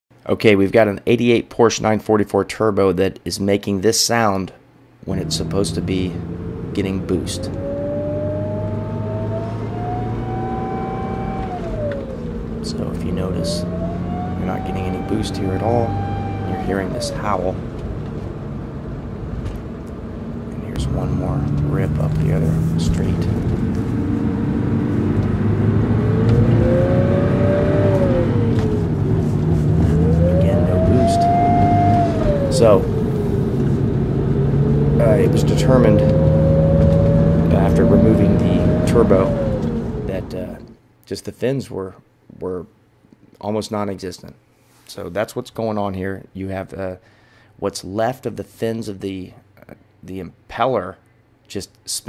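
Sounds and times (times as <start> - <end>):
turbocharger howling: 5.0 - 40.7
car engine running: 5.1 - 40.7.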